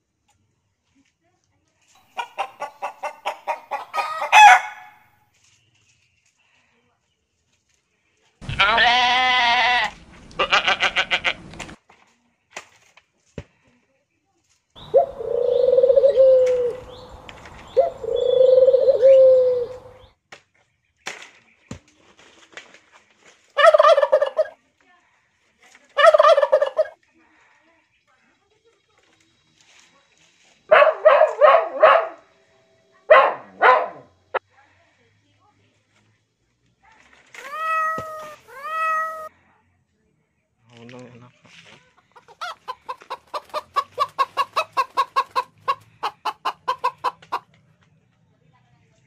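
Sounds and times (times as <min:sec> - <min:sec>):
goat bleating: 0:08.4 - 0:11.4.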